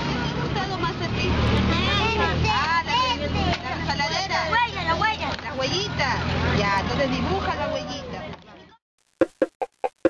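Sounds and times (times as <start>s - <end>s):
children and adults talking: 0.0s - 8.8s
percussive music beats: 9.1s - 10.0s.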